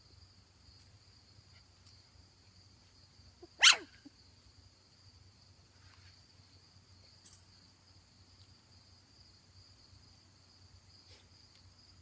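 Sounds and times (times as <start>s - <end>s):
puppy yipping: 3.4s - 4.0s.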